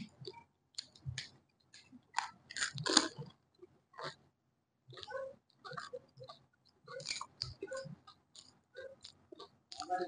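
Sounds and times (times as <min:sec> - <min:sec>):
crunchy chewing: 0:00.0 - 0:04.2, 0:04.9 - 0:10.0.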